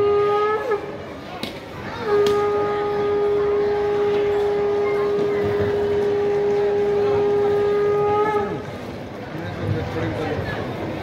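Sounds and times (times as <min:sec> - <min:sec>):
conch shell blown: 0:00.0 - 0:01.1, 0:02.0 - 0:08.9.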